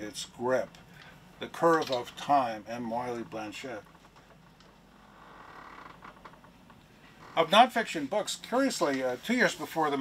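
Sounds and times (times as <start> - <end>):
drawn-out creak: 3.3 - 7.6.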